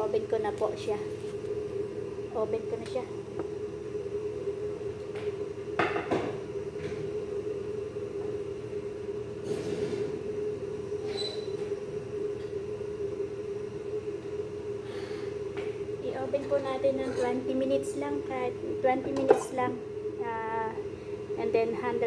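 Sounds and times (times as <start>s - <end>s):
kitchen appliance humming: 0.0s - 22.0s.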